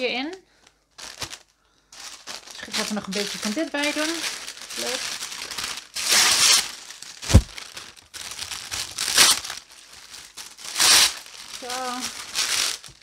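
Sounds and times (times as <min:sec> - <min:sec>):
sheet crinkling: 0:01.0 - 0:13.0
dull thump: 0:07.2 - 0:07.6.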